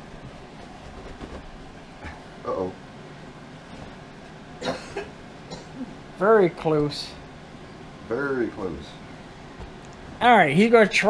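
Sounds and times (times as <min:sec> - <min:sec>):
low background hiss: 0:01.4 - 0:11.0
person coughing: 0:04.6 - 0:05.9.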